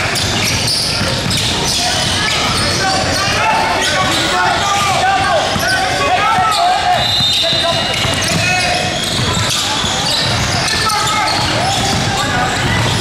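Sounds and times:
echoing voices: 0:00.0 - 0:13.0
sneaker squeaks: 0:00.0 - 0:13.0.

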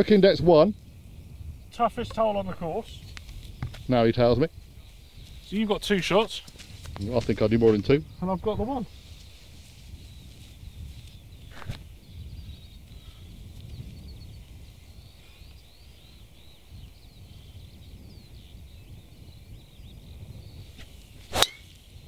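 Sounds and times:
low outdoor background: 0:00.0 - 0:22.0
golf driver striking ball: 0:21.3 - 0:21.7.

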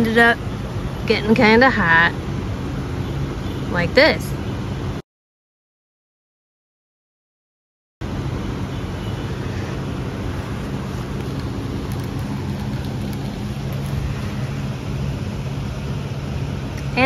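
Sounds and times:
electric fan motor hum: 0:08.0 - 0:17.0.

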